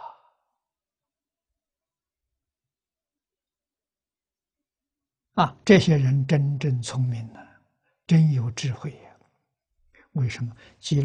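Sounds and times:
man speaking: 5.4 - 7.5, 8.1 - 9.1, 10.2 - 11.0.

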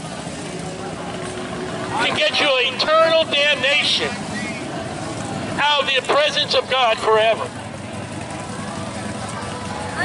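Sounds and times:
faint vehicle engine hum: 0.0 - 10.0
road traffic noise: 0.0 - 10.0.

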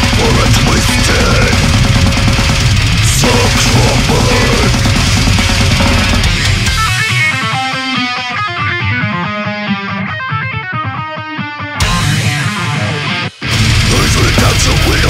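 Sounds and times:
fast picked guitar riff: 0.0 - 15.0
heavy metal band playing: 0.0 - 15.0.

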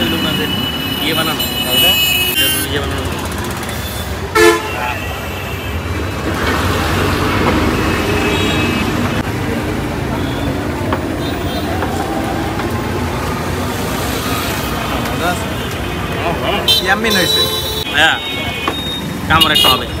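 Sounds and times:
road vehicles rumbling past: 0.0 - 20.0
vehicle horn toot: 4.3 - 5.6.

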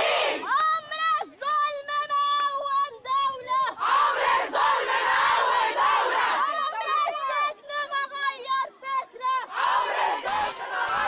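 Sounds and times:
crowd shouting back together: 9.0 - 11.0.

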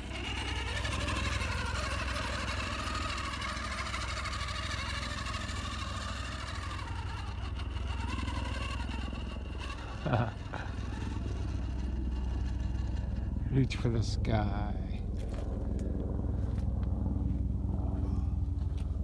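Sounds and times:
electric motor whining: 0.0 - 14.3
low hum: 0.0 - 19.0.

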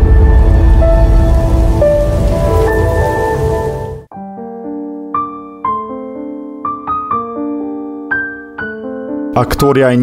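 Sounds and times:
low rumbling noise: 0.0 - 4.1.

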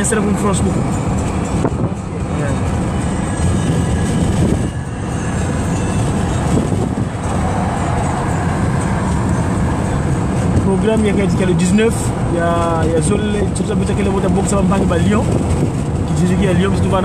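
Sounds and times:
vehicle road and engine noise: 0.0 - 17.0.

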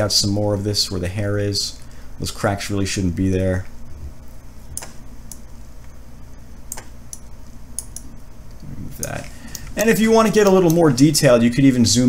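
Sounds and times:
low steady hum: 0.0 - 12.0
computer mouse clicking: 4.7 - 5.5, 6.7 - 9.7.

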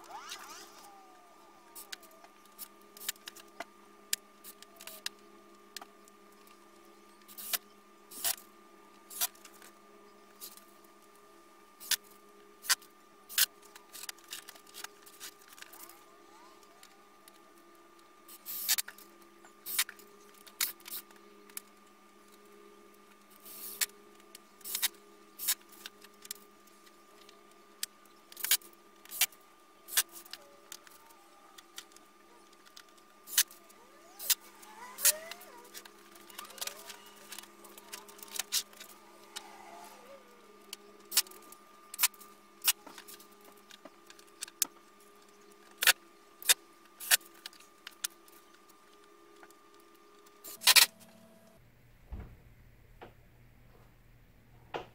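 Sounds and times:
steady hum: 0.0 - 54.5.

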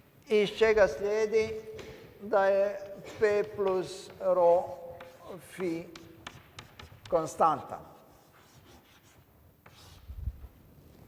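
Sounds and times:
chalk scratching on blackboard: 2.6 - 10.2.

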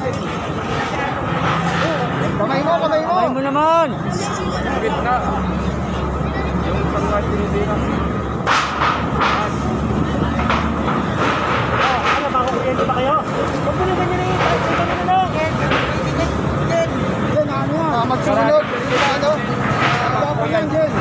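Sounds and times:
people talking: 0.0 - 8.3, 9.2 - 21.0
street traffic hum: 0.0 - 21.0.

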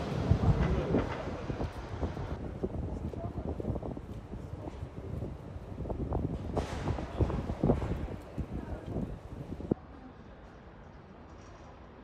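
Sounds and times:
wind buffeting microphone: 0.0 - 9.8
quiet street ambience: 0.0 - 12.0.

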